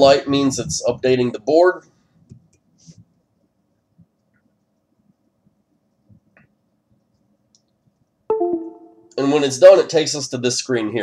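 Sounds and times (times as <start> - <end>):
electronic chime: 8.3 - 9.2.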